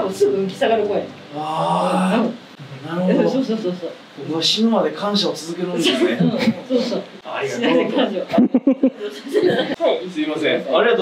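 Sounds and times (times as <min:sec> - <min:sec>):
voice holding long vowel: 0:01.3 - 0:02.4.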